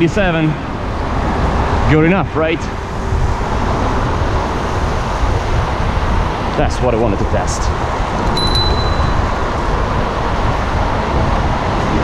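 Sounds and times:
bicycle road noise: 0.0 - 12.0
wind rushing over microphone: 0.0 - 12.0.

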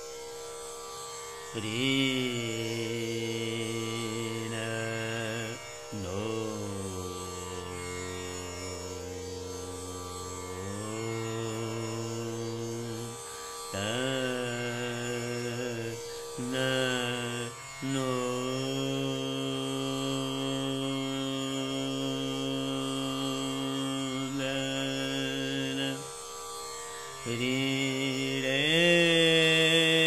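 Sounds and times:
tanpura drone: 0.0 - 30.0
man singing slow phrases: 1.6 - 13.2, 13.8 - 26.1, 27.2 - 30.0.

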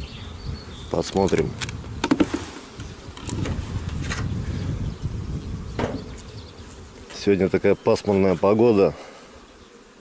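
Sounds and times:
bees buzzing: 0.0 - 10.0
hive cover clicks and rustles: 1.0 - 4.3.

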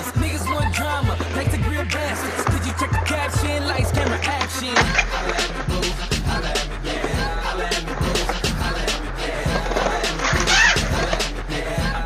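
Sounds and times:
hip-hop music with steady beat: 0.0 - 12.0
skateboard wheels rolling on concrete: 0.0 - 12.0.

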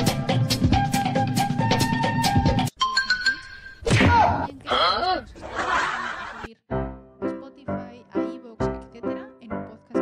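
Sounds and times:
music: 0.0 - 3.4, 6.6 - 10.0.

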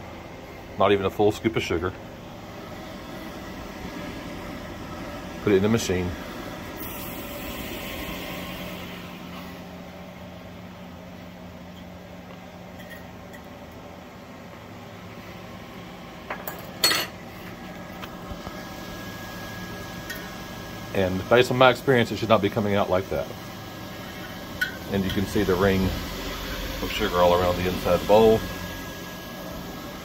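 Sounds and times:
cotton candy machine humming: 0.0 - 30.0.

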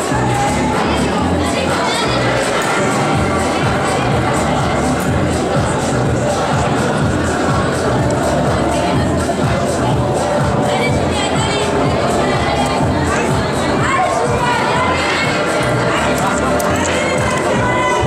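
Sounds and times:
crowd shouting and cheering: 0.0 - 18.0
music: 0.0 - 18.0
high-pitched shouts: 16.6 - 18.0.

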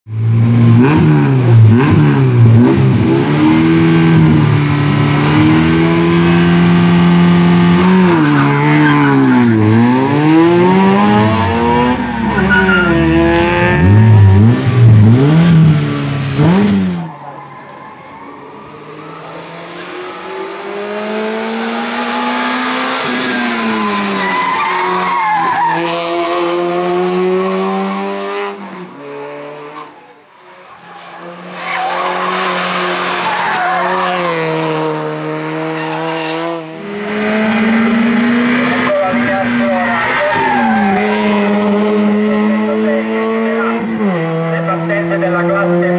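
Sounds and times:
race car engine revving: 0.1 - 45.9
car accelerating with gear changes: 0.2 - 17.1, 17.8 - 30.1, 31.6 - 45.9.

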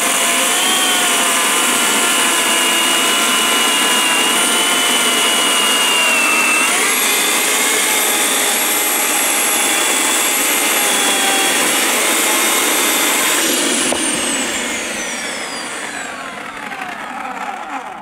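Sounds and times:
electric chainsaw cutting log: 0.0 - 18.0.

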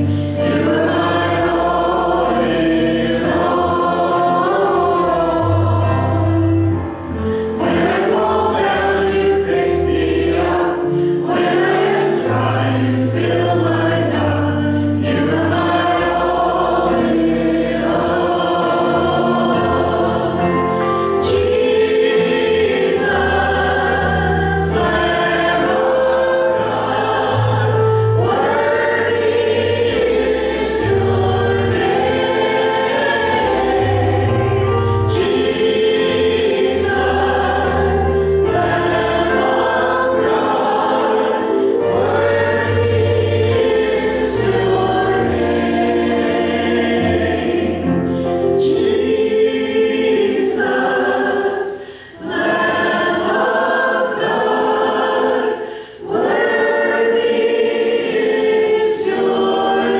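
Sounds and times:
instrumental accompaniment with bass: 0.0 - 51.4
voices singing in harmony: 0.0 - 59.9.

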